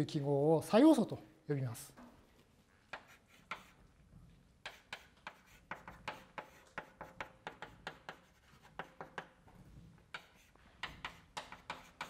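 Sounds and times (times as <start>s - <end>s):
chalk writing on blackboard: 2.9s - 4.0s, 4.6s - 12.0s.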